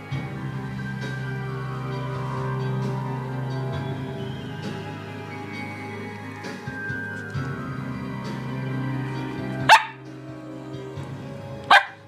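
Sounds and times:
background music: 0.0s - 12.0s
dog barking: 9.7s - 10.0s, 11.7s - 12.0s.

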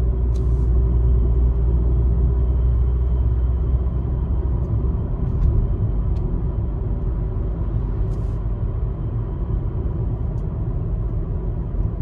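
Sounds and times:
car tyre and engine rumble: 0.0s - 12.0s.

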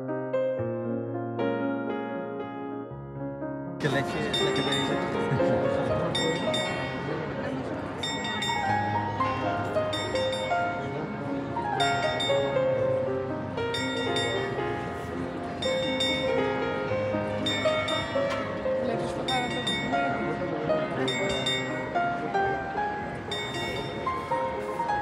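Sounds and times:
plucked string melody: 3.8s - 25.0s.

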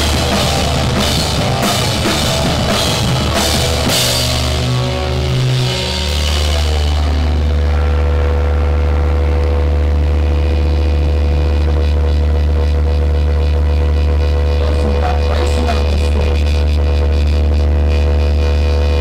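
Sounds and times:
amplifier hum and drone: 0.0s - 19.0s
drums: 0.0s - 19.0s.

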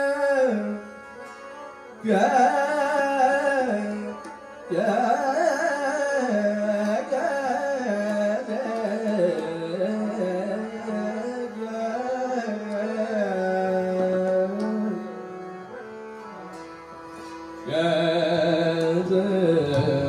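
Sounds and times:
man singing classical vocal: 0.0s - 1.2s, 2.0s - 16.1s, 17.4s - 20.0s
harmonium: 0.0s - 20.0s
tabla: 0.0s - 20.0s.

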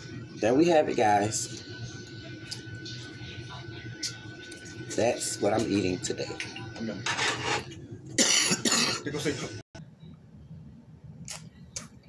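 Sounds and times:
woman coughing: 8.2s - 9.2s.

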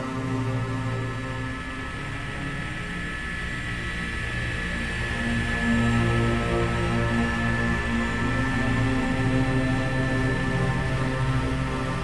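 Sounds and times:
music of long sustained notes: 0.0s - 12.0s.

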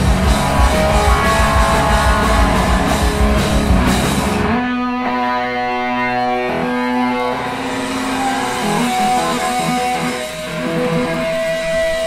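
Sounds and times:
distorted electric guitar ringing: 0.0s - 12.0s
live punk band: 0.0s - 12.0s.

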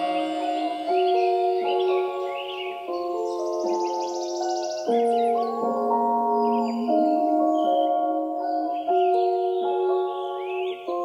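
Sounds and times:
held synth chords: 0.0s - 11.0s
high gliding chirps: 0.0s - 11.0s.

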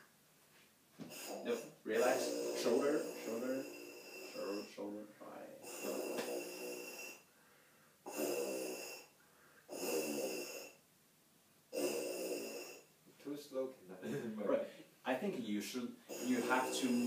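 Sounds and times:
lips buzzing into tuba mouthpiece: 1.0s - 4.7s, 5.6s - 7.3s, 8.1s - 10.8s, 11.7s - 12.9s, 16.1s - 17.0s.

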